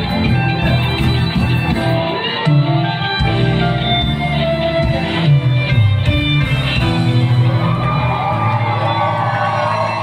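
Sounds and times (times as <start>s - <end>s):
live band playing amplified music: 0.0s - 10.0s
crowd cheering and whooping: 7.0s - 10.0s.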